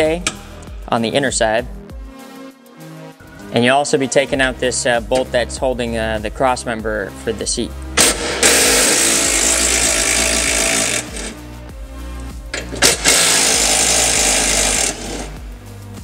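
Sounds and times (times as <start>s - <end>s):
cordless impact driver: 8.0s - 11.4s, 12.6s - 15.4s.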